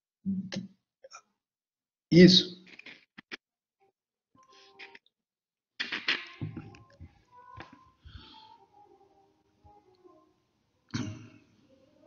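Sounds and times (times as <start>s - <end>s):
soft breath: 8.0s - 8.7s.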